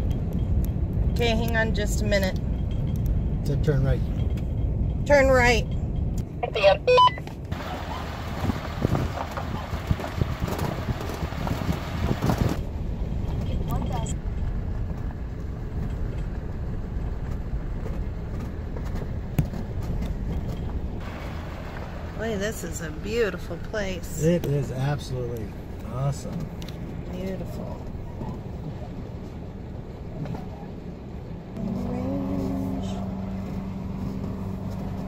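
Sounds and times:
engine and road rumble: 0:00.0 - 0:35.0.

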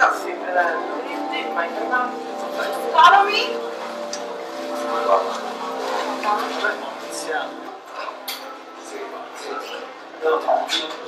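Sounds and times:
people talking: 0:00.0 - 0:11.0
sustained musical drone: 0:00.0 - 0:11.0.

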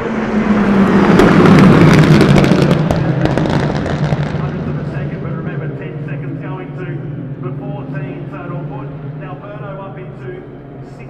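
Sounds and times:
racing cars passing: 0:00.0 - 0:11.0
exhaust cracks and pops: 0:01.1 - 0:05.0.

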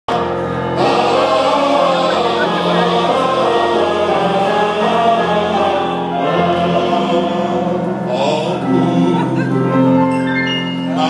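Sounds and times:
choir singing sustained notes: 0:00.1 - 0:10.0, 0:10.8 - 0:11.0.

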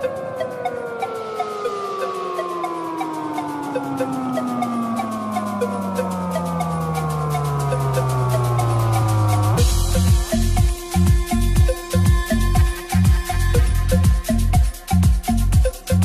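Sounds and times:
synth tone falling in pitch: 0:00.0 - 0:16.0
ticking hi-hat pattern: 0:00.0 - 0:16.0.

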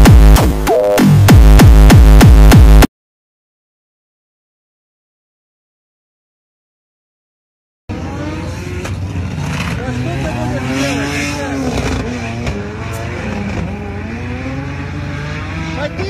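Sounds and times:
car engine revving: 0:07.9 - 0:16.0
people's voices: 0:09.7 - 0:13.5.

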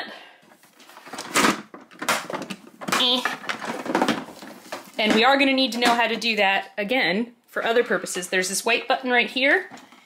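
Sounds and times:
plastic toy knocking and clattering: 0:01.2 - 0:06.2.

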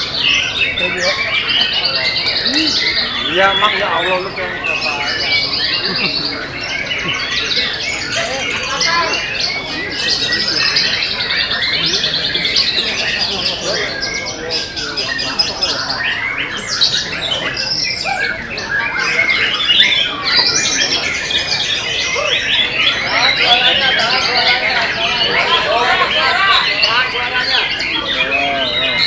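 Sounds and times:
songbirds singing: 0:00.0 - 0:29.0.

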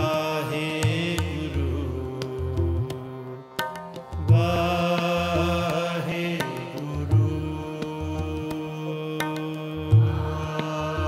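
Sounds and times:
harmonium chords: 0:00.0 - 0:11.0.

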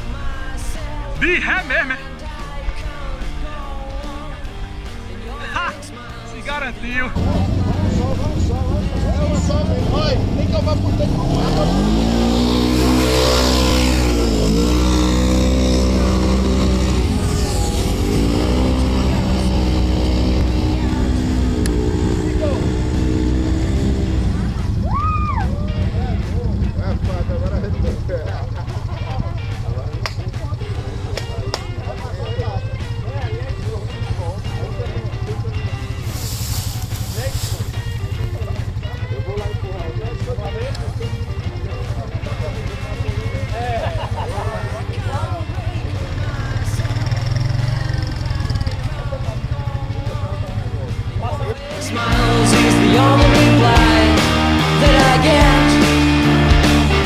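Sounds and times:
utility vehicle engine revving: 0:00.0 - 0:57.0
voices: 0:00.0 - 0:57.0.

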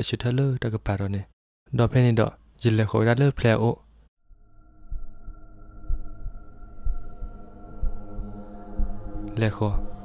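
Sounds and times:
eerie low drone: 0:04.2 - 0:10.0
heartbeat double thumps: 0:04.9 - 0:10.0.

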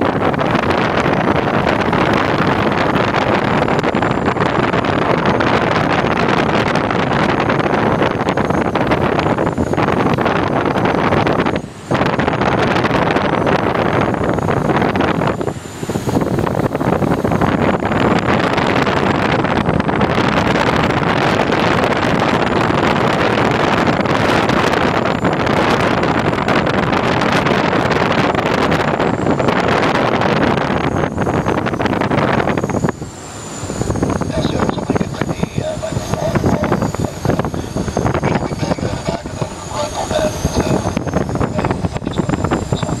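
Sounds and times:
wind rushing past cockpit: 0:00.0 - 0:43.0.

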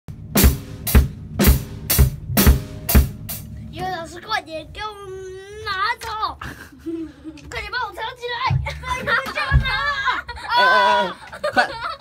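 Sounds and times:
drum kit hits: 0:00.1 - 0:03.6.

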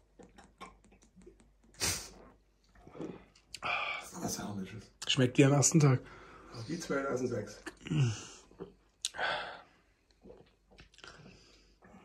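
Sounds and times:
person sipping and swallowing: 0:00.0 - 0:03.8, 0:07.7 - 0:12.0.

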